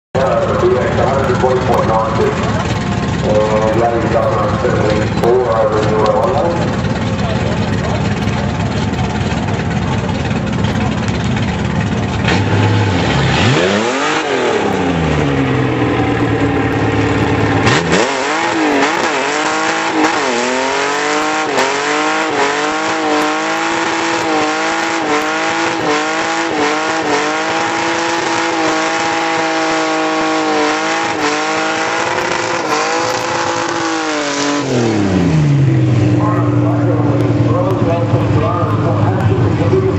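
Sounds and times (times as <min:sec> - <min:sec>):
car engine revving: 0:00.2 - 0:39.9.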